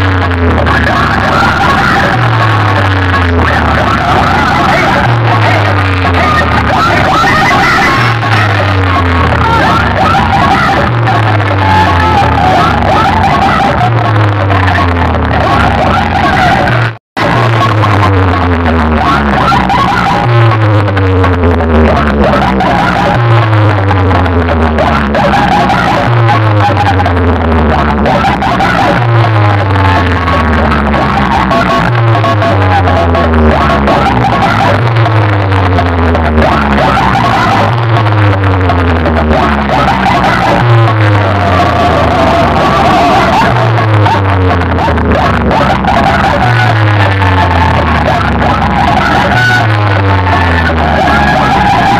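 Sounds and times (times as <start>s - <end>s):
loud dance music with heavy bass: 0.0s - 51.9s.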